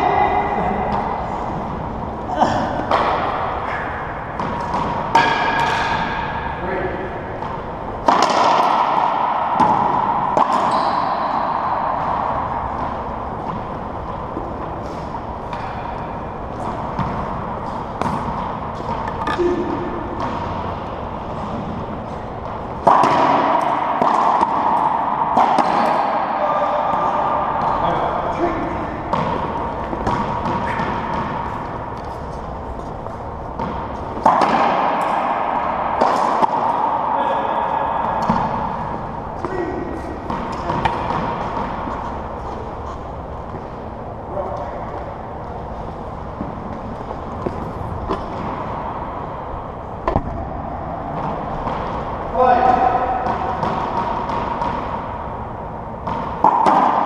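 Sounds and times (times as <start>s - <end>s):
racquetball hits echoing: 0.0s - 57.0s.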